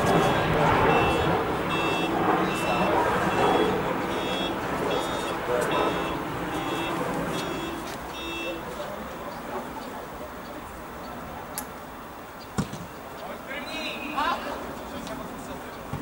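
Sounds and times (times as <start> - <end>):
reversing alarm beeping: 0.0 - 8.6.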